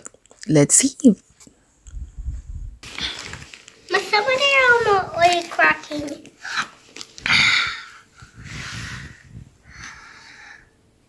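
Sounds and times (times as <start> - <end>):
paper bag rustling: 2.8 - 7.2.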